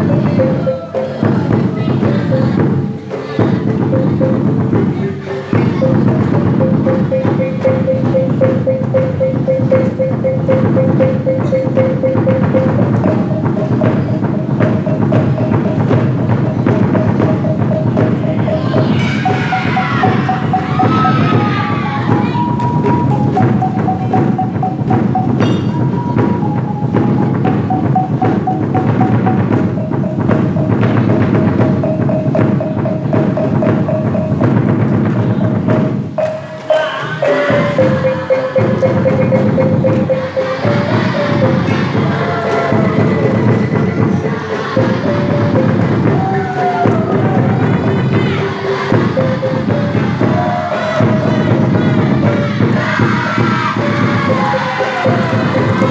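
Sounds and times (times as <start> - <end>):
reedy wind instrument melody: 0.0 - 34.6, 36.0 - 55.9
drums in fast rhythm: 0.0 - 55.9.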